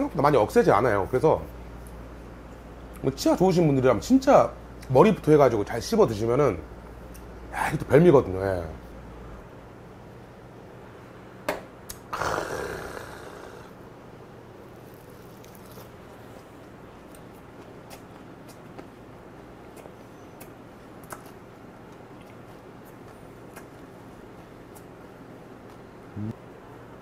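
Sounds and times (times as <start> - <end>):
eating and chewing clicks: 19.6 - 23.9.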